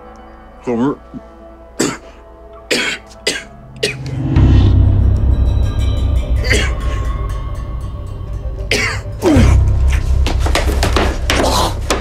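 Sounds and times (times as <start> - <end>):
dramatic orchestral score: 2.5 - 12.0.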